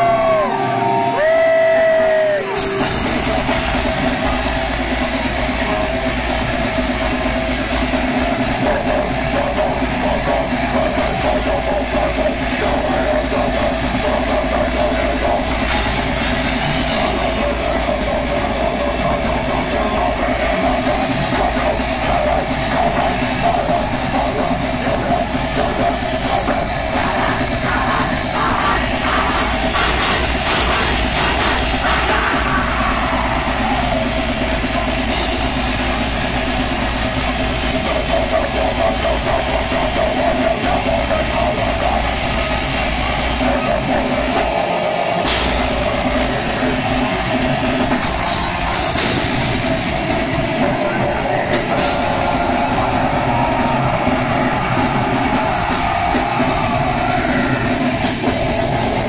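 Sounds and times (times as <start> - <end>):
distorted electric guitars: 0.0 - 59.0
drums: 0.0 - 59.0.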